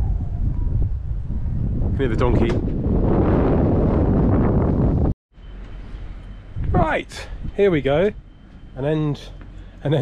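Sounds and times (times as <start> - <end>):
wind buffeting microphone: 0.0 - 5.2, 6.4 - 8.3.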